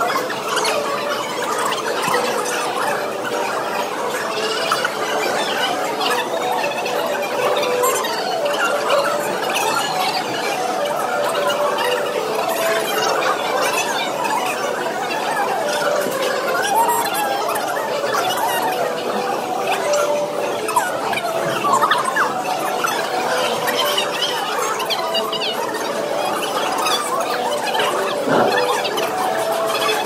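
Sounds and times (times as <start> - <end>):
high squeaky chattering voices: 0.0 - 30.0.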